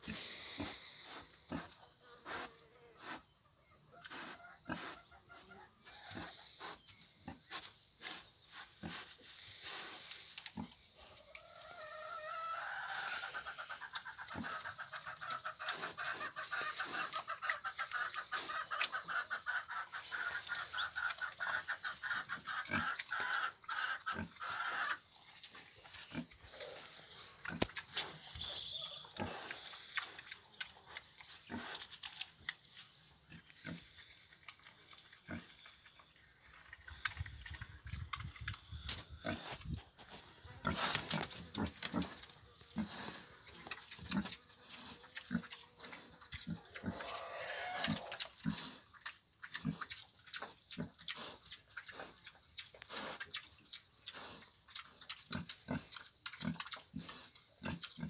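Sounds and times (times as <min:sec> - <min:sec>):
pig chewing grass: 0:25.3 - 0:32.8, 0:33.6 - 0:39.6, 0:40.6 - 0:58.0.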